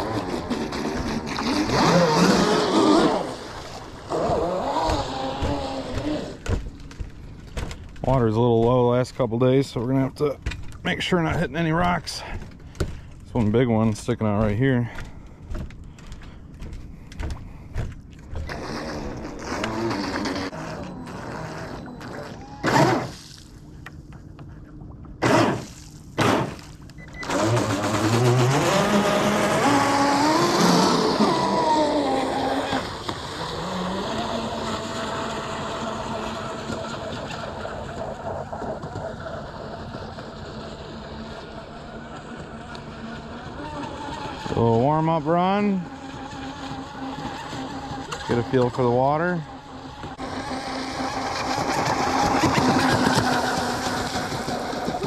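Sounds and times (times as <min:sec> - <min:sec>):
model boat motor whine: 0:00.0 - 0:08.0, 0:13.6 - 0:55.0.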